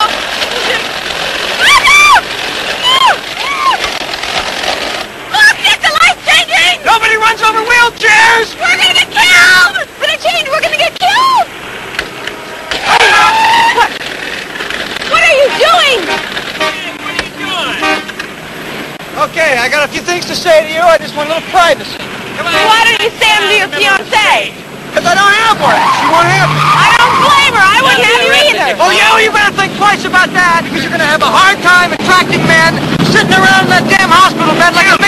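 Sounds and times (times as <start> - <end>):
steady rushing noise: 0.0 - 35.0
high-pitched excited whoops: 1.6 - 2.2, 2.8 - 3.8, 12.8 - 13.9, 25.6 - 27.6
car horns honking: 15.1 - 18.8, 22.2 - 24.5.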